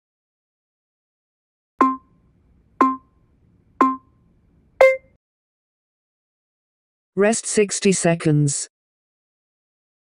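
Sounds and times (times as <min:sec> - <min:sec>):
timer countdown beeps: 0:01.8 - 0:02.2, 0:02.8 - 0:03.2, 0:03.8 - 0:04.1, 0:04.8 - 0:05.2.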